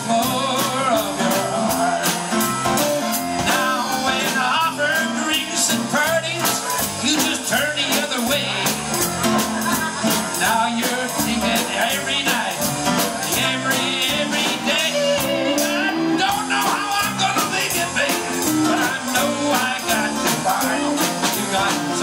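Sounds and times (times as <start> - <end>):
country-rock band playing: 0.0 - 22.0
drums keeping a steady beat: 0.0 - 22.0
guitar: 0.0 - 22.0
keyboard: 0.0 - 22.0.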